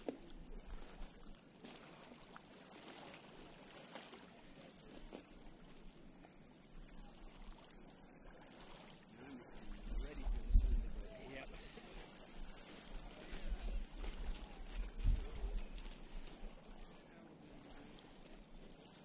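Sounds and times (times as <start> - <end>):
faint distant voices: 0.0 - 19.0
waves lapping on pebbles: 0.0 - 19.0
wind buffeting microphone: 9.8 - 11.5, 12.4 - 16.3.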